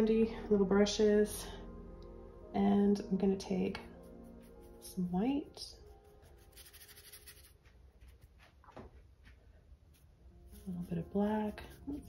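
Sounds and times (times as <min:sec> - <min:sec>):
paintbrush scratching on paper: 0:03.7 - 0:08.7, 0:09.9 - 0:12.0.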